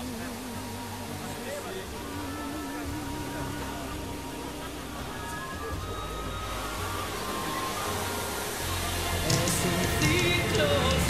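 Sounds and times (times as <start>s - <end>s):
fountain water jets hissing: 0.0s - 11.0s
music: 0.0s - 11.0s.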